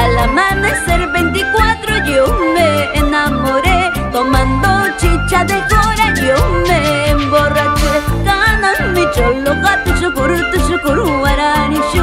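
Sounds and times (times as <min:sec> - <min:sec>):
bass: 0:00.0 - 0:12.0
woman singing with vibrato: 0:00.0 - 0:12.0
drum kit: 0:04.4 - 0:10.7.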